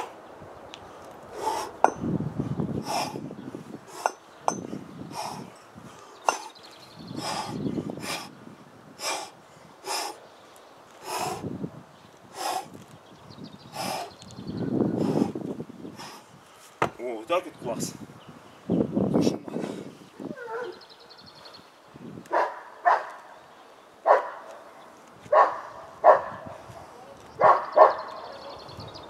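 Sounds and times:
man breathing hard: 0:00.8 - 0:08.4, 0:09.0 - 0:10.2, 0:11.0 - 0:11.6, 0:12.3 - 0:12.8, 0:13.6 - 0:16.7
kettlebells thudding on sand: 0:03.9 - 0:05.4, 0:06.2 - 0:06.6, 0:16.8 - 0:17.1.

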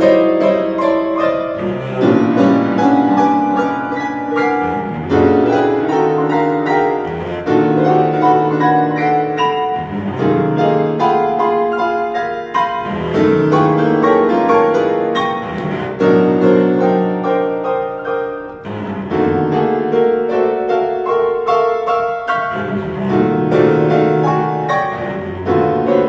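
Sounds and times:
bowed cello notes: 0:00.0 - 0:20.3, 0:22.1 - 0:26.0
piano notes: 0:00.0 - 0:26.0.

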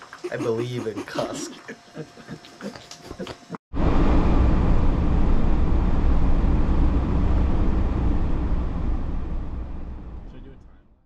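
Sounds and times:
car engine and road noise: 0:03.8 - 0:10.9.

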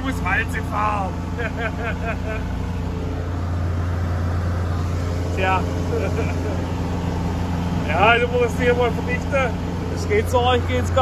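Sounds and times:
road roller engine drone: 0:00.0 - 0:11.0
man laughing: 0:01.3 - 0:02.6, 0:05.8 - 0:06.7.

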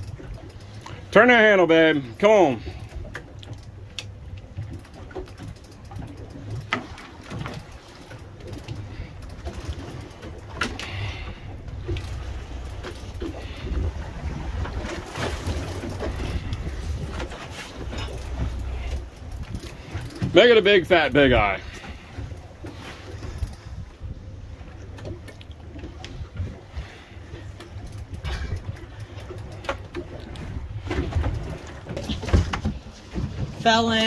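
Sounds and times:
boat engine rumble: 0:00.0 - 0:34.0
sea: 0:00.0 - 0:34.0.

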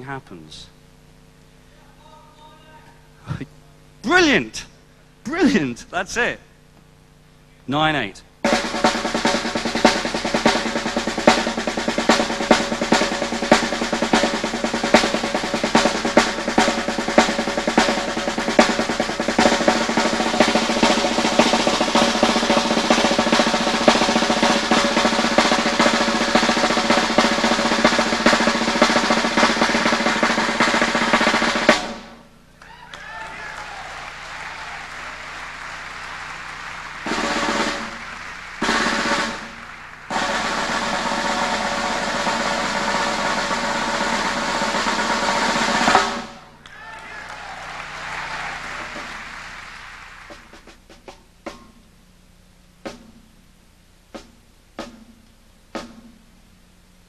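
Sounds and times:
snare drum played with sticks: 0:08.4 - 0:32.2, 0:36.8 - 0:46.8, 0:50.3 - 0:51.9, 0:52.8 - 0:53.4, 0:54.0 - 0:56.3.

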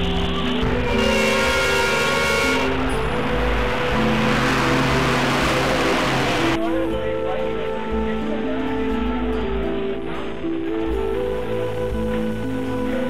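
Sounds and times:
bus driving past: 0:00.0 - 0:06.7
background music with held notes: 0:00.0 - 0:13.0.

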